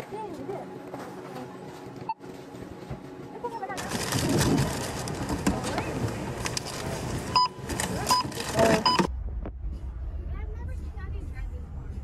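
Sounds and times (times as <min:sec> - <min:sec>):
voices and store noise: 0:00.0 - 0:09.1, 0:09.8 - 0:12.0
barcode scanner beeping: 0:07.3 - 0:09.1.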